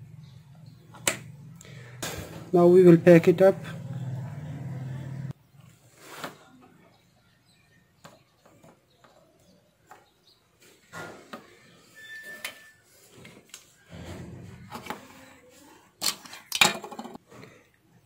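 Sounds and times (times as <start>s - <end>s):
plastic parts clicking and rustling: 16.0s - 17.2s.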